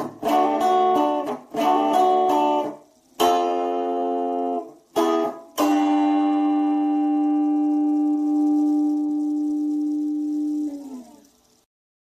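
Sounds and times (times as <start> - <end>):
electric guitar note ringing: 0.0 - 11.6.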